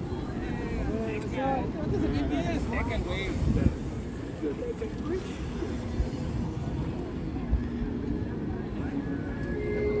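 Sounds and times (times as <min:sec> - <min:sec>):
faint voices: 0:00.0 - 0:10.0
wind and road noise: 0:00.0 - 0:10.0
held musical tones: 0:09.0 - 0:10.0.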